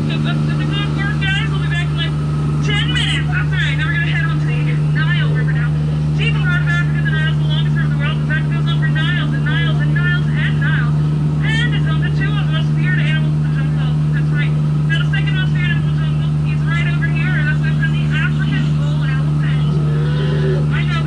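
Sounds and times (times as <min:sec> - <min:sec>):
boat motor humming: 0:00.0 - 0:21.0.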